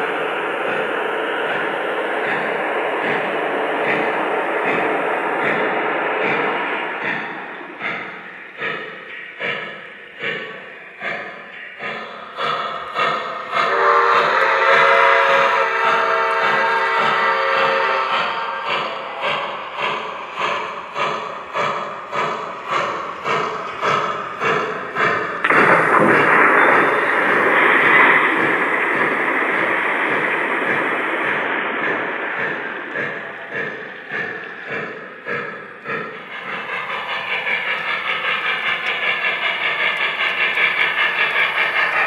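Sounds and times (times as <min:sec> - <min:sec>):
long steam hiss: 0:00.0 - 0:42.0
steam locomotive chuffing: 0:00.0 - 0:42.0
multi-note steam whistle: 0:13.4 - 0:19.5.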